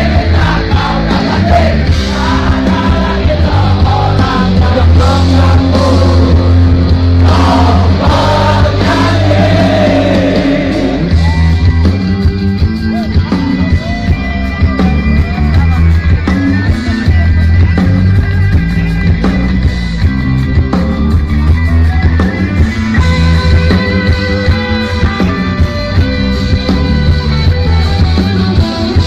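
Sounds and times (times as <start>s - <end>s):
live rock band playing: 0.0s - 29.0s.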